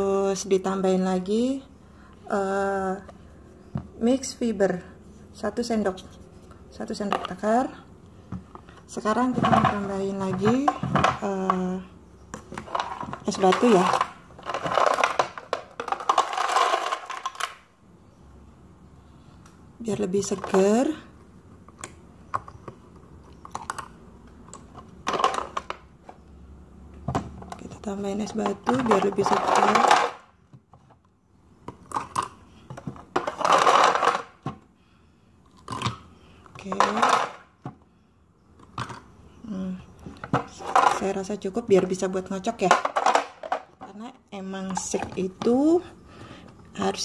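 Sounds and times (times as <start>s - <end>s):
ice cubes clinking: 12.6s - 17.6s, 28.4s - 30.2s
ice cubes rattling in bottle: 12.6s - 17.6s, 28.2s - 30.3s, 33.1s - 34.4s, 36.6s - 37.4s
ice cubes clattering against spoon: 28.4s - 30.2s.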